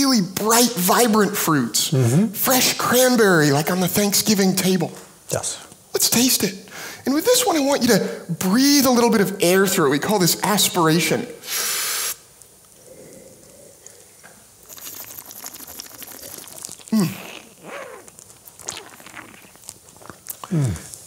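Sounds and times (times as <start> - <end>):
slurping wine: 13.1 - 21.0.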